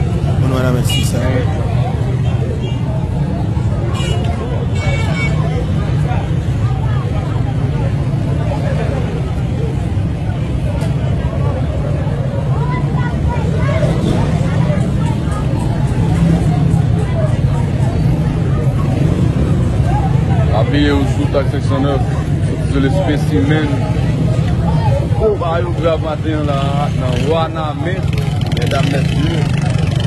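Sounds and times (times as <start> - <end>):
people talking indistinctly: 0.0 - 30.0.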